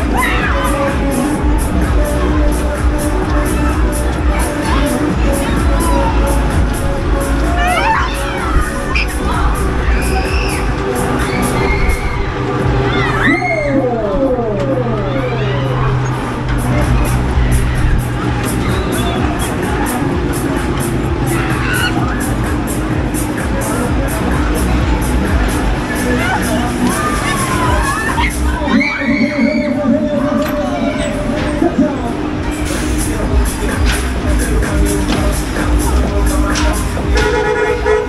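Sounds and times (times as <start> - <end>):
loud ride music: 0.0 - 38.0.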